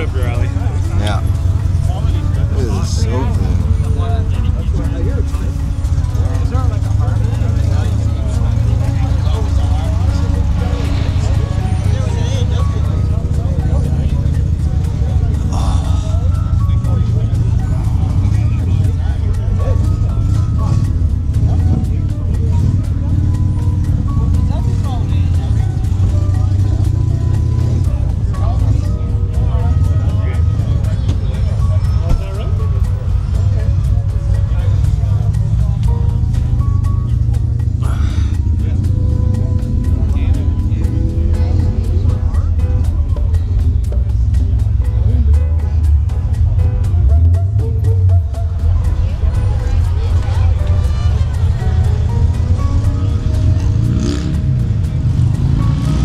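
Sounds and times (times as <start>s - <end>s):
song with vocals and heavy bass: 0.4s - 7.2s, 9.2s - 23.0s, 32.3s - 56.0s.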